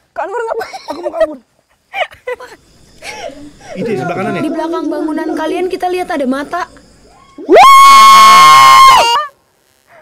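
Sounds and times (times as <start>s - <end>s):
woman screaming: 7.4s - 9.3s.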